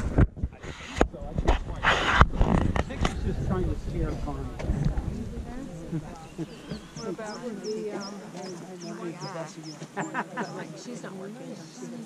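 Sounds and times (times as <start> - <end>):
group of people talking: 0.0 - 12.0.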